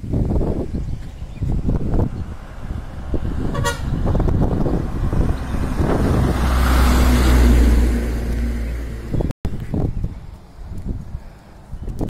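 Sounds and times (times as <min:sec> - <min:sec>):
diesel engine rumble: 0:00.0 - 0:12.0
bus horn toot: 0:03.4 - 0:04.1.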